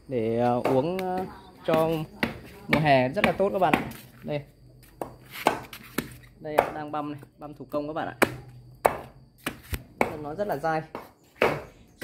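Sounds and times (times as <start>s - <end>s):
knife chopping on wooden board: 8.2s - 10.2s.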